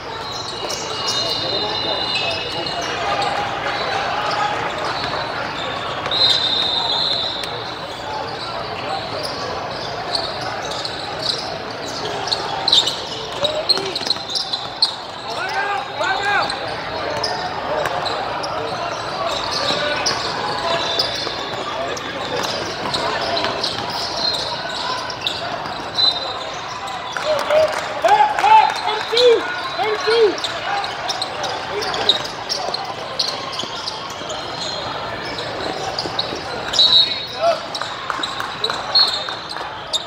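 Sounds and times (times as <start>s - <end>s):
chatter of people in hall: 0.0s - 40.0s
sneakers squeaking: 0.0s - 40.0s.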